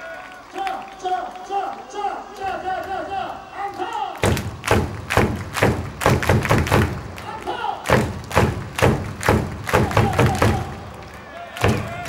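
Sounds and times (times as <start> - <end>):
voices cheering: 0.0 - 4.3, 7.1 - 8.0, 9.5 - 12.0
heavy rhythmic thumps: 4.2 - 10.9, 11.6 - 12.0.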